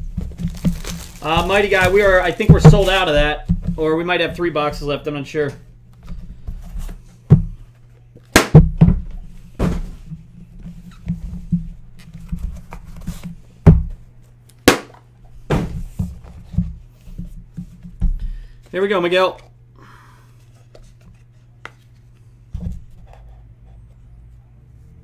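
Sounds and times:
steady low hum: 0.0 - 25.0
boxes knocking on a desk: 0.1 - 3.8.

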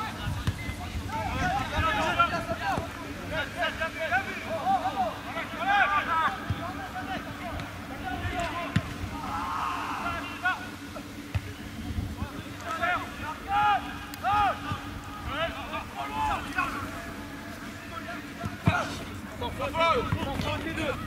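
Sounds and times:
distant shouts of players: 3.5 - 11.6, 12.6 - 21.0.

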